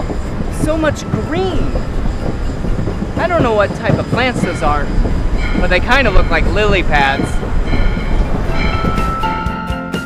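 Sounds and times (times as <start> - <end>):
train rumbling on tracks: 0.0 - 10.0.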